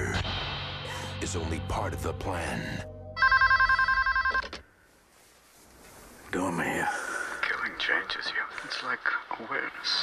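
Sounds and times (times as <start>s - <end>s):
telephone ringing electronic warble: 3.2s - 4.6s.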